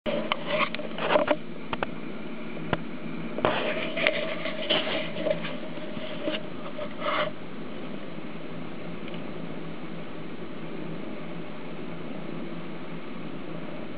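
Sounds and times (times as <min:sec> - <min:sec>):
faint steady hum: 0:00.1 - 0:13.9
clicks and rustles: 0:02.8 - 0:07.3
fabric rubbing on microphone: 0:03.4 - 0:07.4.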